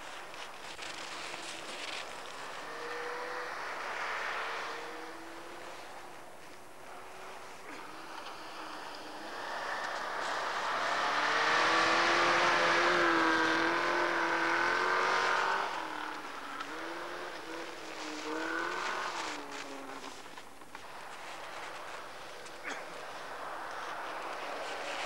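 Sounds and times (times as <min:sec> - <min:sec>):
rally car engine at high revs: 0:00.0 - 0:25.0.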